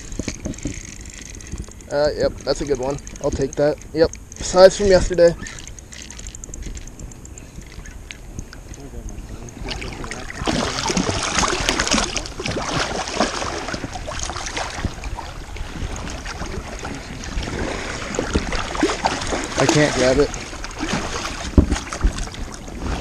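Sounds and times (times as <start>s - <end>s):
fish splashing at water surface: 9.6s - 23.0s.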